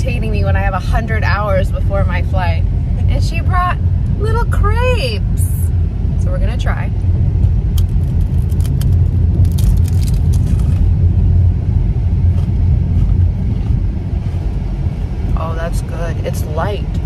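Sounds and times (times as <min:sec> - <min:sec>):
car cabin rumble: 0:00.0 - 0:17.0
crispy food crunching: 0:07.7 - 0:11.0, 0:12.3 - 0:14.4.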